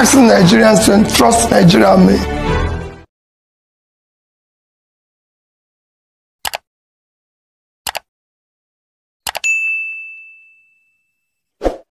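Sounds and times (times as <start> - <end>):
double mouse click: 6.4 - 6.7, 7.9 - 8.1
notification bell ding: 9.4 - 11.4.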